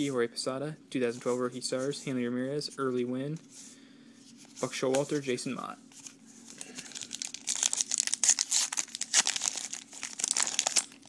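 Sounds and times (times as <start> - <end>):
wrapper tearing and crinkling: 6.6 - 11.0.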